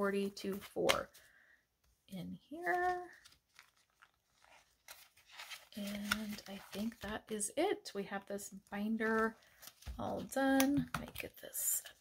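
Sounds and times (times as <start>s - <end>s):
plastic envelope rustling: 2.5s - 7.3s, 9.0s - 10.5s.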